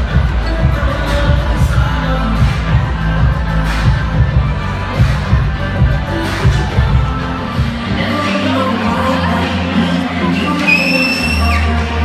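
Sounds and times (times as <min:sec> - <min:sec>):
music with deep bass notes: 0:00.0 - 0:12.0
high whistle-like tone: 0:10.6 - 0:11.6.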